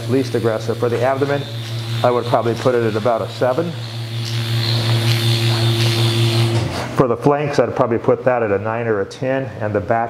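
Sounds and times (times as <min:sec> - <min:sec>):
surgical handpiece electric hum: 0:00.0 - 0:10.0.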